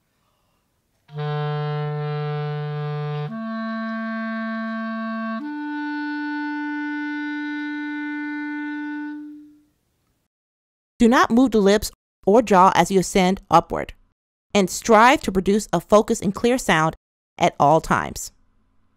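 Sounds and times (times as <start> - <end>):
clarinet long low notes: 1.1 - 9.7.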